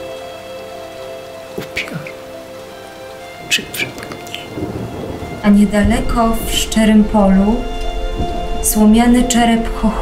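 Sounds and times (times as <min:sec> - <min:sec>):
musical drone: 0:00.0 - 0:10.0
steady rain: 0:00.0 - 0:10.0
sharp taps: 0:03.7 - 0:04.5.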